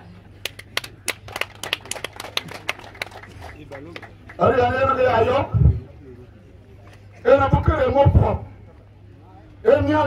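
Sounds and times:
hand claps: 0.4s - 4.4s.

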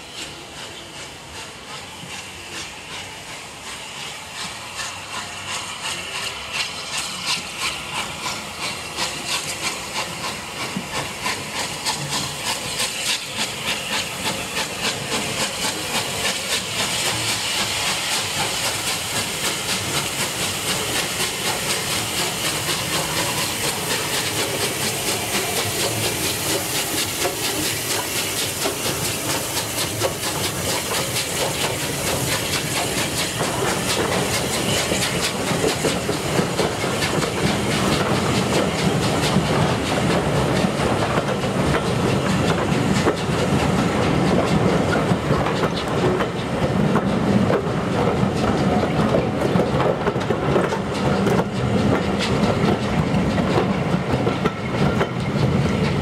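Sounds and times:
steam locomotive hissing: 0.0s - 56.0s
train wheels clickety-clack: 0.0s - 56.0s.

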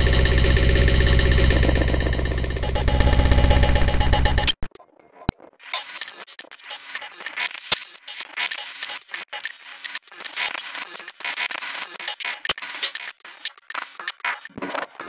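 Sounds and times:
glitch electronic music: 0.0s - 4.7s
sharp digital clicks: 0.0s - 4.7s.

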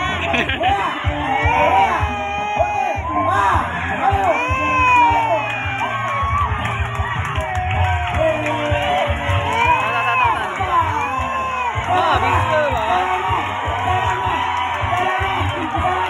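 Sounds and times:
crowd shouting and cheering: 0.0s - 16.0s.

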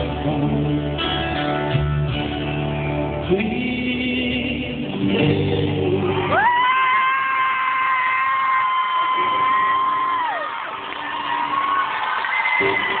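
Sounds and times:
concert crowd cheering: 5.5s - 13.0s.

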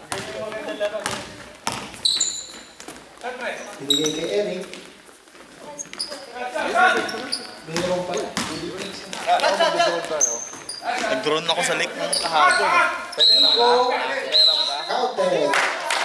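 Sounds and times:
basketball bouncing: 0.0s - 4.9s, 6.9s - 9.3s
sneakers squeaking on floor: 0.0s - 15.1s
players calling out: 5.8s - 15.2s.

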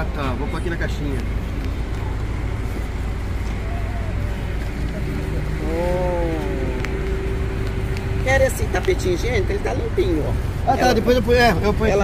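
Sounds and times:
low rumble of motor traffic: 0.0s - 12.0s.

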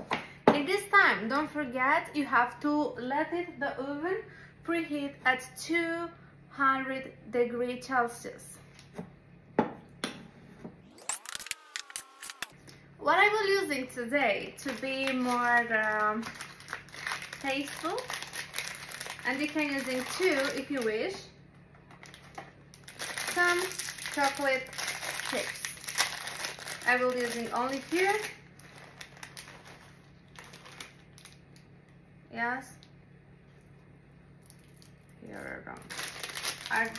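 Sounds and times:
brief rising pitched tone: 10.9s - 12.5s
plastic bag crinkling: 14.4s - 21.2s, 21.8s - 31.5s, 35.7s - 36.9s.

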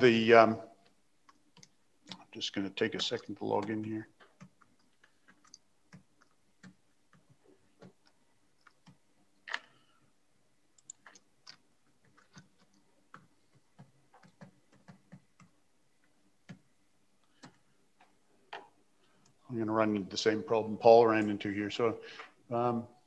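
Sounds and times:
computer keyboard keystrokes: 3.0s - 9.8s, 10.8s - 15.6s, 16.4s - 17.6s.

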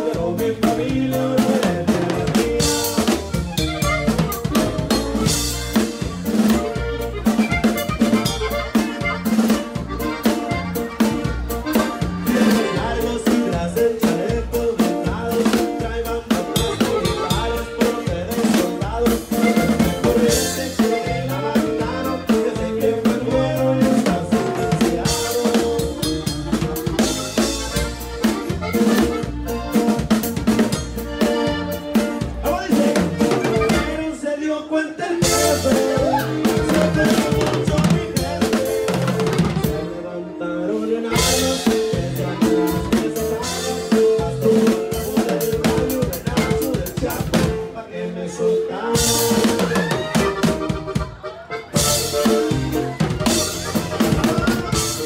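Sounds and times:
drum kit: 0.0s - 34.2s, 35.2s - 40.0s, 41.1s - 47.8s, 48.6s - 55.0s
live band music: 0.0s - 55.0s.

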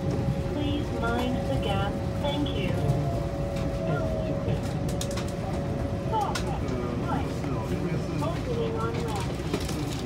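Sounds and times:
electric train rumble: 0.0s - 10.0s
people's voices: 0.5s - 10.0s.

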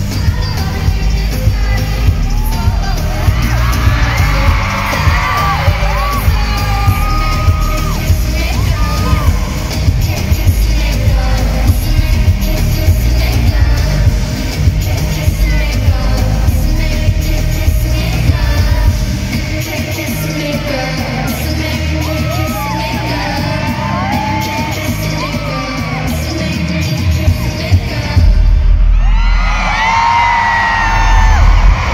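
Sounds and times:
heavy bass beat: 0.0s - 31.9s
live pop concert music: 0.0s - 31.9s
person singing: 0.0s - 31.9s
fans yelling: 2.1s - 10.3s, 28.9s - 31.9s.

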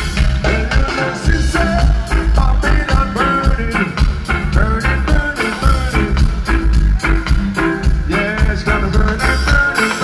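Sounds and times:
live reggae band playing: 0.0s - 10.0s.

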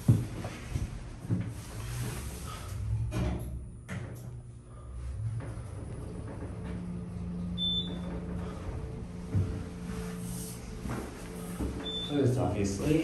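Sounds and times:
elevator hum: 0.0s - 13.0s.

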